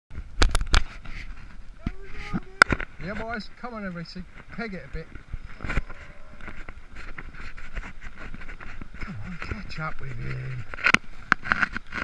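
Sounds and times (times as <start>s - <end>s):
bike tyres on gravel: 0.2s - 12.0s
wind on microphone: 4.2s - 12.0s.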